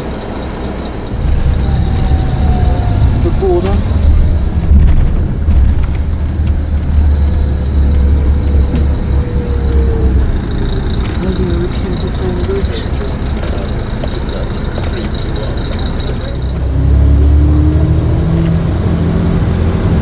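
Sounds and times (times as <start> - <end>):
coach engine and road rumble: 0.0 - 20.0.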